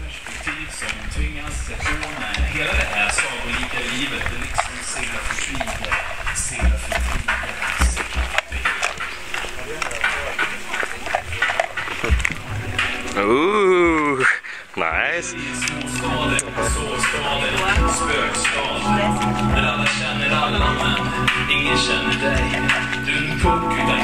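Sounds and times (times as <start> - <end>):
background music: 0.0 - 24.0
people talking: 0.0 - 24.0
thumps on microphone: 5.8 - 8.6.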